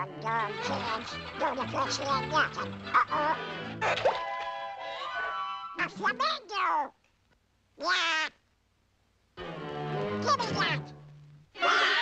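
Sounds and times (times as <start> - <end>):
cartoon duck voice: 7.8 - 8.4, 10.2 - 10.9.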